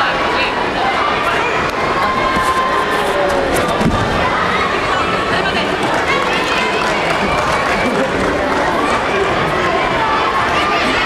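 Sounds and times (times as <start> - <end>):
crowd hubbub: 0.0 - 11.0.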